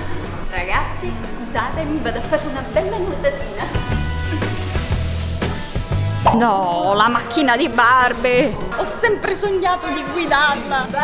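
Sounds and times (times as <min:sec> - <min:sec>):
background music: 0:00.0 - 0:11.0
candy sprinkles hissing rustle: 0:02.1 - 0:06.4.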